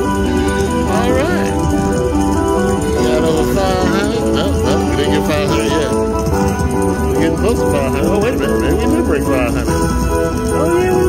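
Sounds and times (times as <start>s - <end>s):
casino background noise: 0.0s - 11.0s
jingling coin sound effects: 0.0s - 11.0s
slot machine win music: 0.0s - 11.0s.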